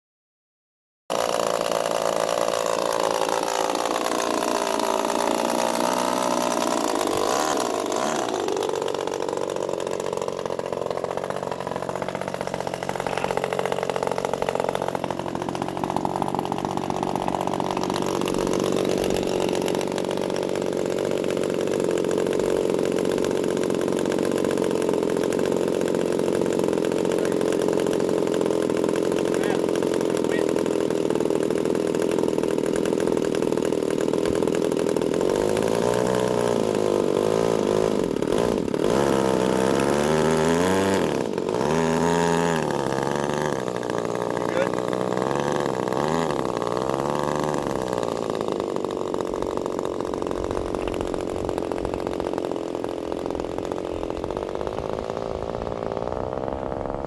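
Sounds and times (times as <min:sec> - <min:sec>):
model plane engine revving: 0:01.1 - 0:57.0.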